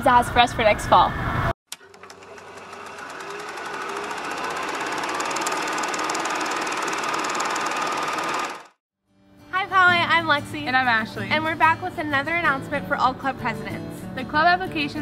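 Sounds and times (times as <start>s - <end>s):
fast even rattle: 1.7s - 8.8s.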